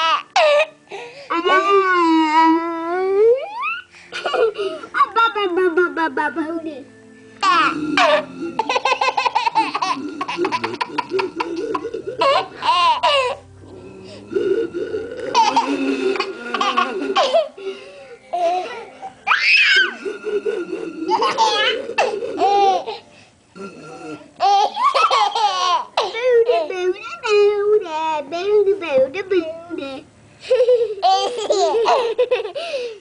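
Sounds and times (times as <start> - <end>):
baby laughing and squealing: 12.2 - 13.4, 18.4 - 23.0.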